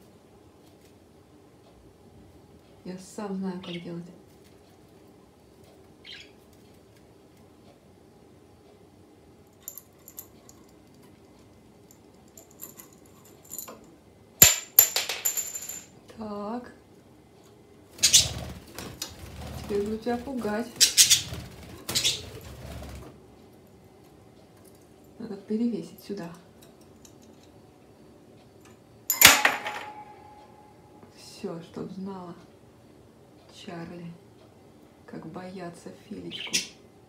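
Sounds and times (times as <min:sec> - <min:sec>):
ring rattling as it bounces: 0:09.6 - 0:10.8, 0:12.3 - 0:13.8, 0:14.4 - 0:15.9, 0:29.1 - 0:30.3
toy ring clinking on hard surface: 0:09.6 - 0:10.8, 0:11.9 - 0:13.8, 0:14.4 - 0:15.9, 0:29.1 - 0:30.5
toy ring knocking down: 0:14.4 - 0:15.9, 0:29.1 - 0:30.3.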